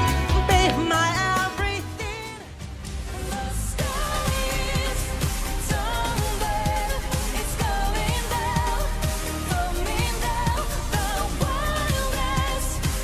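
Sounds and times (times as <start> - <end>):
woman singing: 0.0 - 2.6, 3.2 - 13.0
electronic pop track: 0.0 - 13.0.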